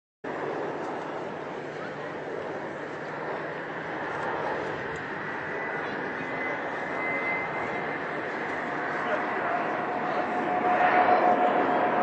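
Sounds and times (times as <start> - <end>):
faint high engine whine: 0.3 - 12.0
jet engine rush: 0.3 - 12.0.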